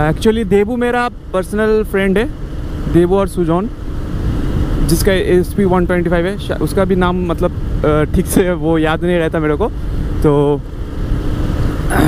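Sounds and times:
motorcycle engine hum: 0.0 - 12.0
wind rushing on microphone: 0.0 - 12.0.

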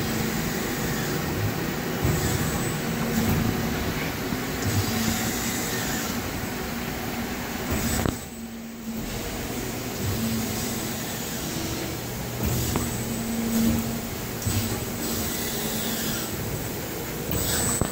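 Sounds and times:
hydraulic machine hum: 0.0 - 17.9
low mechanical thumps: 1.4 - 5.6, 7.5 - 17.6.

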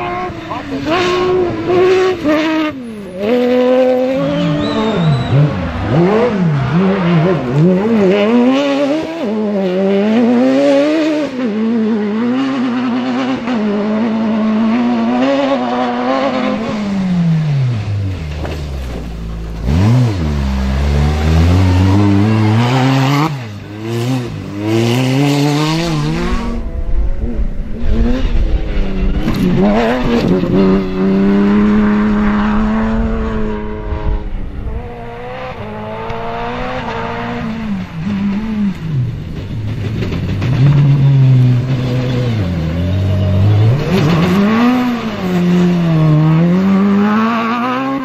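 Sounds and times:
rally car engines revving: 0.0 - 48.0.

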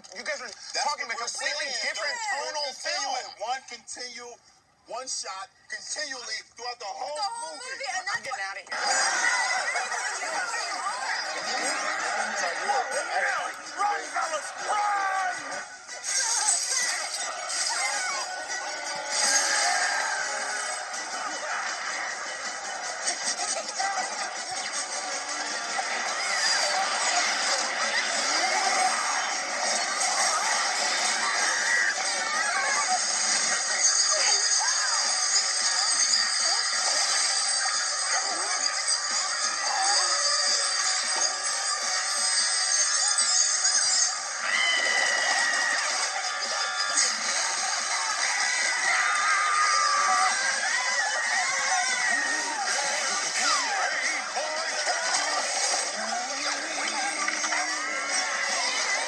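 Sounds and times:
jumble of music: 7.8 - 59.0
cartoon-like noises: 8.7 - 59.0.

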